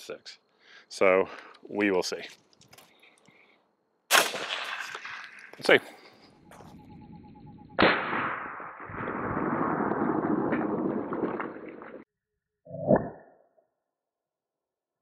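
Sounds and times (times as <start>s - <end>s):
suppressed rifle shots: 4.1s - 5.3s, 7.8s - 8.8s.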